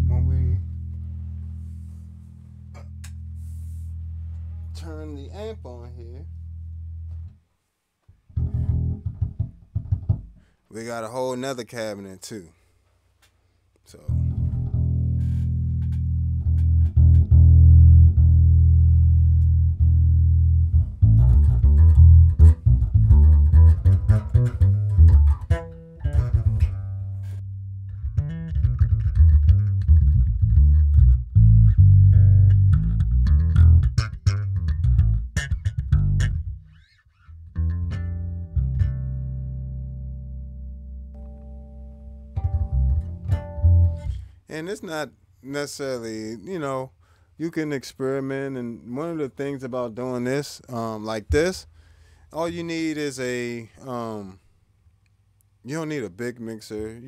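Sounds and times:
electric bass guitar: 0.0s - 7.4s, 8.2s - 10.5s, 13.9s - 45.0s, 50.7s - 54.4s.

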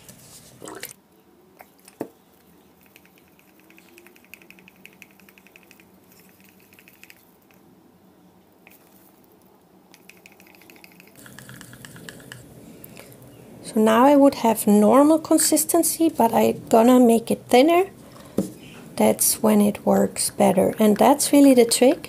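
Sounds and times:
stick stirring paint in cup: 10.0s - 13.1s.

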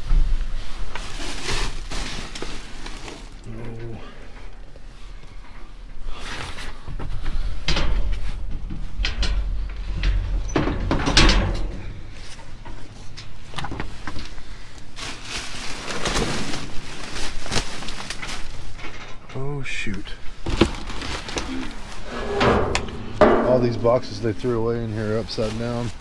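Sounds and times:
plastic bags rustling: 0.0s - 3.6s, 12.1s - 19.0s, 20.2s - 26.0s
low rumble: 21.6s - 25.6s
knocks against metal dumpster: 22.1s - 24.4s.

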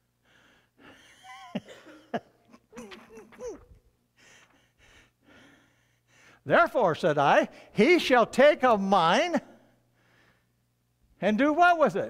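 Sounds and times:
man laughing wheezily: 0.8s - 4.7s.

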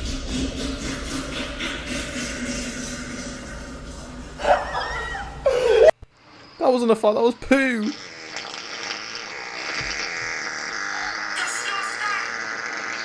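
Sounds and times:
laughter bursts: 4.4s - 5.9s
long buzzing fart: 7.5s - 13.0s.

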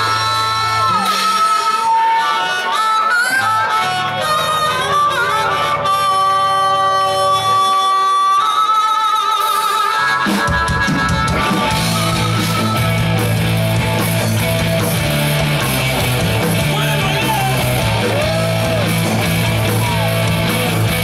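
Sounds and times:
harmonica bending notes: 0.0s - 21.0s.

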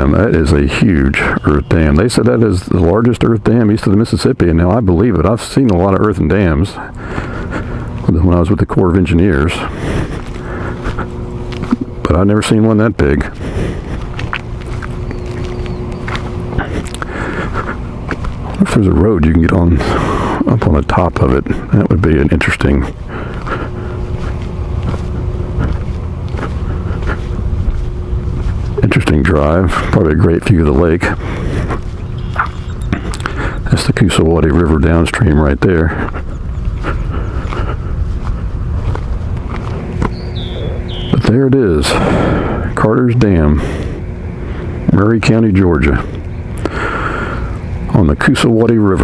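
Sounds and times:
motorcycle engine rumbling: 0.0s - 49.0s
high chirp: 1.1s - 2.0s, 31.9s - 33.1s, 40.0s - 41.4s
wind noise: 34.8s - 42.8s.

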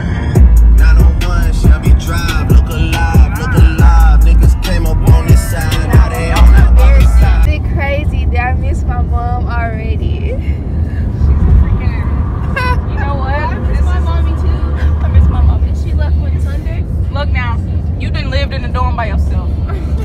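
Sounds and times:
music: 0.0s - 7.5s
car cabin road rumble: 0.0s - 20.0s
voices: 0.8s - 10.4s, 11.2s - 20.0s.

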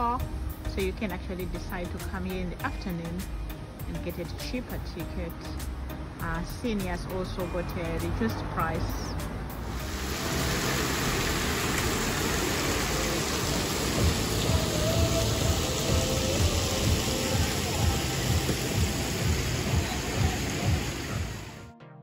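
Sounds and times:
water rushing and splashing: 7.0s - 21.7s
electronic music: 13.9s - 22.0s.

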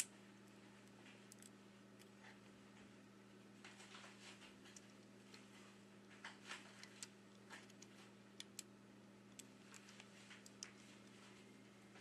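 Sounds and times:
steady low hum: 0.0s - 12.0s
small sharp clicks: 6.2s - 8.7s.

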